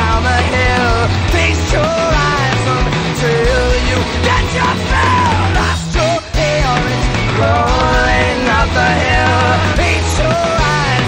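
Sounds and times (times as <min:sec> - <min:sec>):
bass guitar: 0:00.0 - 0:11.0
distorted electric guitar: 0:00.0 - 0:11.0
drums: 0:00.0 - 0:11.0.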